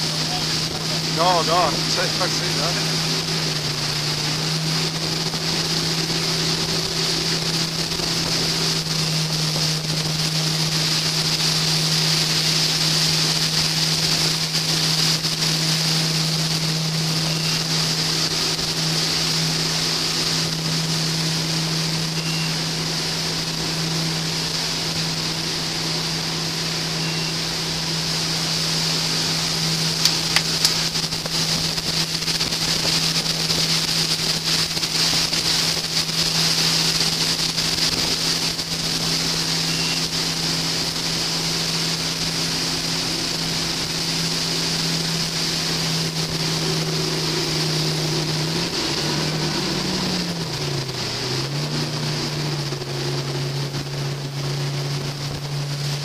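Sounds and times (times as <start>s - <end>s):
boat engine running: 0.0s - 56.0s
churning wake rushing: 0.0s - 56.0s
wind on microphone: 2.8s - 22.9s, 28.8s - 56.0s.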